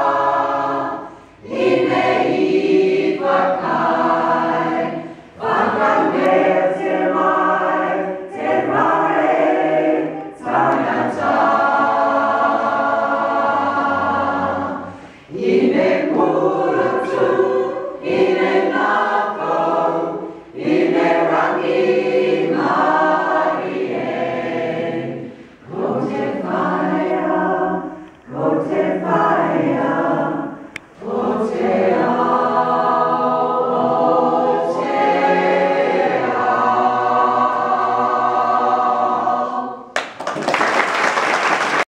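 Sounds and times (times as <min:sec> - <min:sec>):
choir singing a hymn unaccompanied: 0:00.0 - 0:40.0
audience applause: 0:40.0 - 0:41.9.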